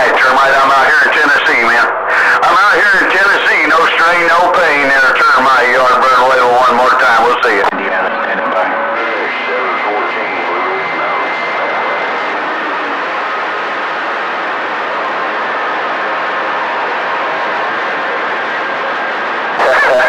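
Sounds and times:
garbled radio voice: 0:00.0 - 0:13.2, 0:19.6 - 0:20.0
radio static hiss: 0:00.0 - 0:20.0.

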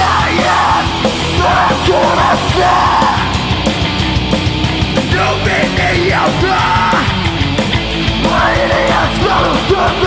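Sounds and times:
shouted vocals: 0:00.0 - 0:03.5, 0:05.1 - 0:07.2, 0:08.2 - 0:10.0
bass guitar: 0:00.0 - 0:10.0
distorted electric guitars: 0:00.0 - 0:10.0
drum kit: 0:00.0 - 0:10.0.

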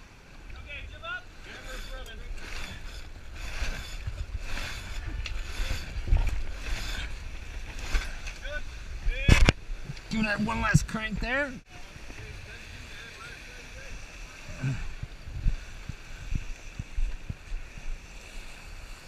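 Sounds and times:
wind buffeting microphone: 0:00.0 - 0:19.0
rope rasping through blocks: 0:01.4 - 0:08.6.

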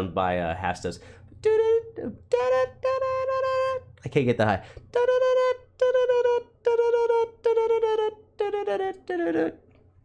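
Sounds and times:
man singing high notes: 0:00.9 - 0:09.6.

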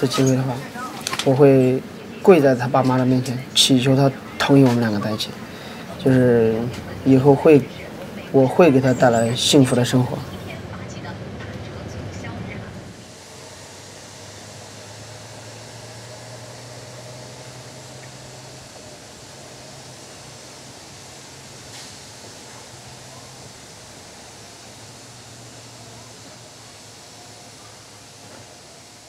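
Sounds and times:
bus rumbling from inside: 0:00.0 - 0:29.0
distant city traffic hum: 0:00.0 - 0:29.0.

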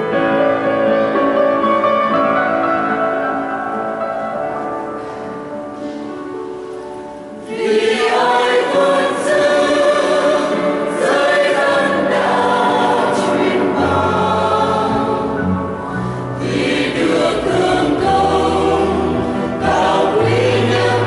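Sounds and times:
piano accompaniment: 0:00.0 - 0:21.0
mixed choir singing a hymn: 0:07.4 - 0:21.0.

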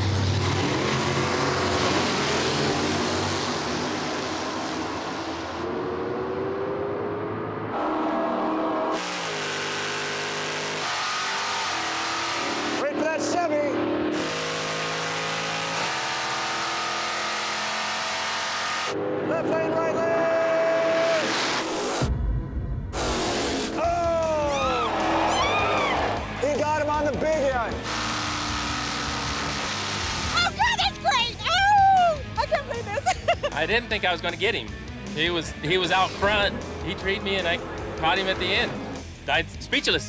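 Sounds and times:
drag racing cars at full throttle: 0:00.0 - 0:31.6, 0:32.2 - 0:40.0.

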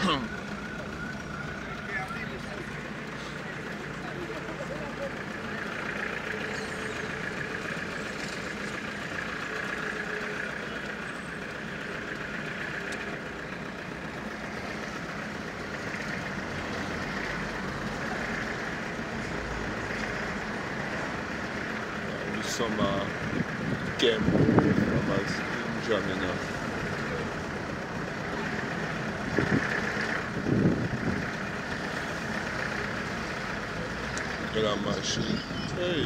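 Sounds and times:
car engine and road noise: 0:00.0 - 0:36.0
indistinct voices: 0:32.2 - 0:36.0.

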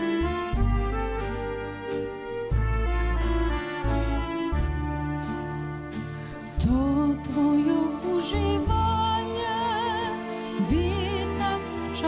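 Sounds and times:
moving bass line: 0:00.0 - 0:11.9
accordion chords: 0:00.0 - 0:12.0
orchestra playing: 0:00.9 - 0:12.0.

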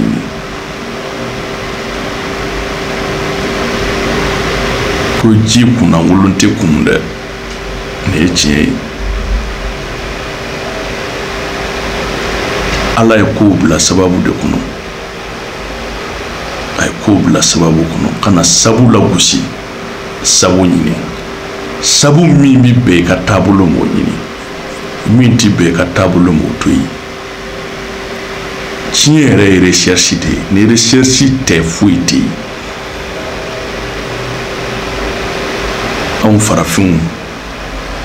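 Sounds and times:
low hum: 0:00.0 - 0:38.0.

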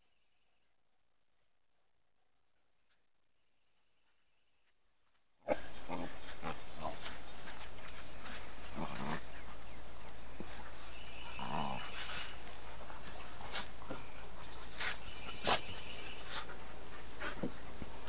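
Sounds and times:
dogs growling at play: 0:05.4 - 0:18.0.

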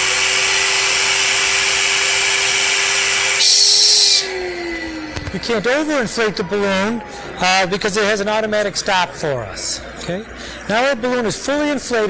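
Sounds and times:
air hissing: 0:00.0 - 0:05.4
vacuum motor humming: 0:00.0 - 0:07.1.

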